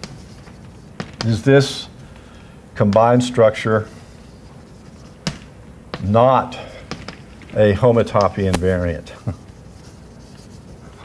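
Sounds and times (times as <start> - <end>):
chalk knocking on blackboard: 4.3 - 5.5.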